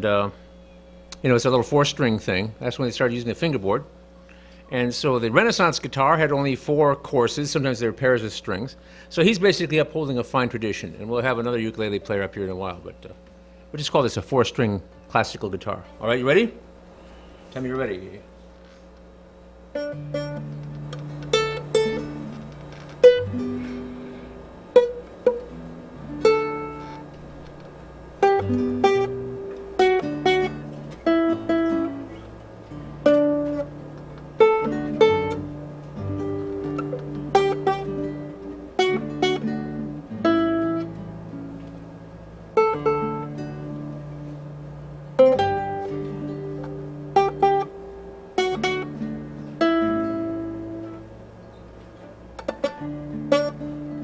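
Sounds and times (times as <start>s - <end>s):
ukulele and guitar duet: 19.7s - 41.9s, 42.5s - 51.1s, 52.4s - 54.0s.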